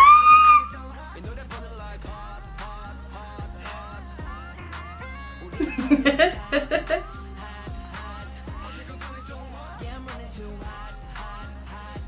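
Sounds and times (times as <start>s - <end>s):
woman squealing excitedly: 0.0s - 0.8s
quiet pop music with beat: 0.0s - 12.0s.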